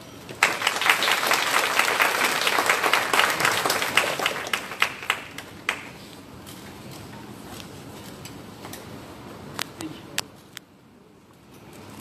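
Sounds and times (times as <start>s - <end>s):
audience applauding: 0.4s - 6.0s.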